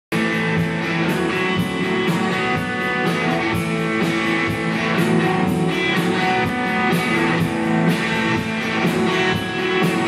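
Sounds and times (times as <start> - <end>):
drum kit beat: 0.1 - 10.0
electric guitars through amplifiers: 0.1 - 10.0.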